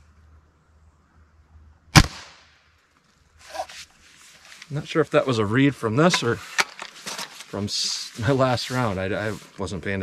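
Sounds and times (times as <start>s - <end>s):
suppressed air rifle shot: 1.9s - 2.5s
rifle handling rustle: 2.8s - 5.0s, 5.9s - 9.7s.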